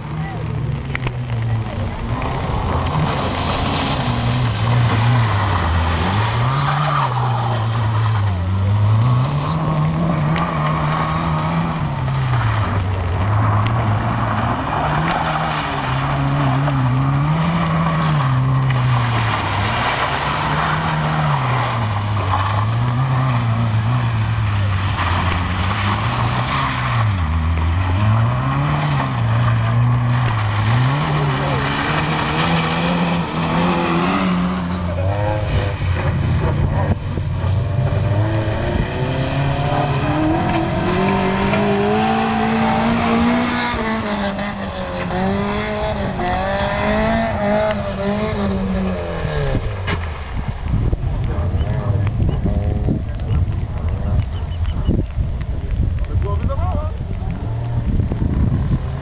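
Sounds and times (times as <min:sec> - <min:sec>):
rally car engines revving: 0:00.0 - 0:59.0
hiss of flung gravel and water: 0:02.4 - 0:07.6.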